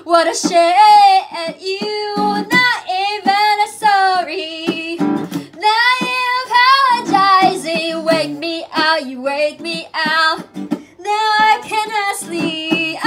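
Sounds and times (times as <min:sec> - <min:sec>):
plucked acoustic guitar: 0:00.0 - 0:13.0
woman singing: 0:00.0 - 0:13.0.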